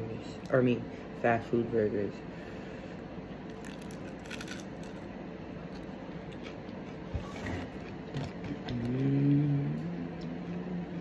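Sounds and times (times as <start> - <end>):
low room hum: 0.0 - 11.0
person chewing food: 3.4 - 11.0.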